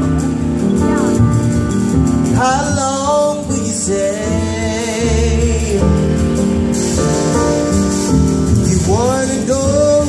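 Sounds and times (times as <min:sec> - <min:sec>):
grand piano: 0:00.0 - 0:10.0
soul-jazz band music: 0:00.0 - 0:10.0
upright bass: 0:00.0 - 0:10.0
man singing long notes: 0:02.4 - 0:06.3, 0:08.6 - 0:10.0.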